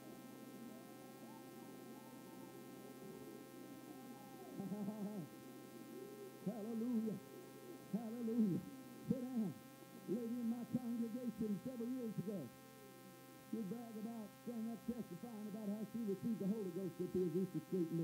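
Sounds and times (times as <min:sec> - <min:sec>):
steady hum: 0:00.0 - 0:18.0.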